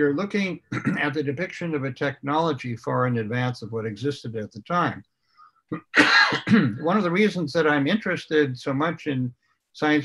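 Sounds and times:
speech: 0.0 - 5.0, 6.3 - 10.0
man clearing his throat: 0.7 - 1.3, 5.7 - 7.0.

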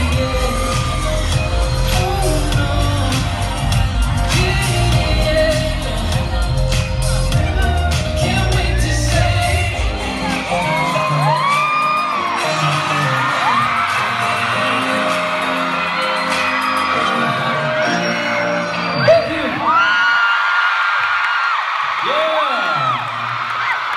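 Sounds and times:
crowd screaming and whooping: 0.0 - 23.9
live pop song over loudspeakers: 0.0 - 23.9.

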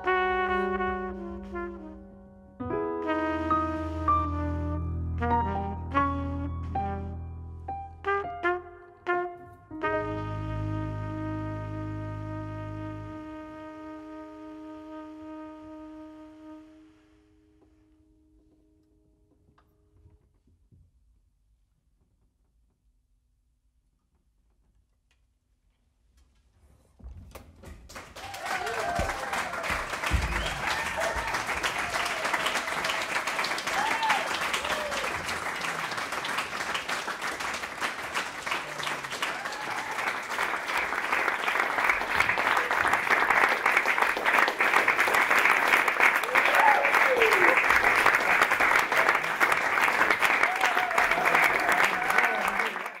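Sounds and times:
audience applauding: 27.9 - 53.0.

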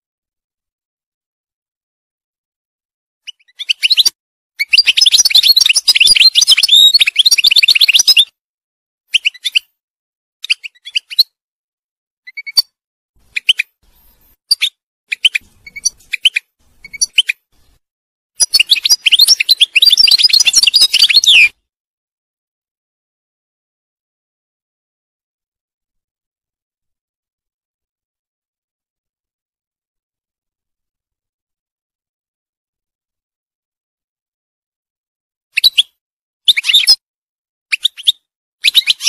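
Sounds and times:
goldfinch twittering song: 3.2 - 8.3, 14.5 - 17.5, 18.4 - 21.5.

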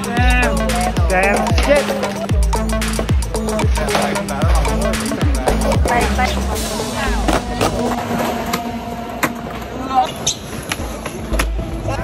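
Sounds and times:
skateboard wheels rolling on concrete: 0.0 - 12.0.

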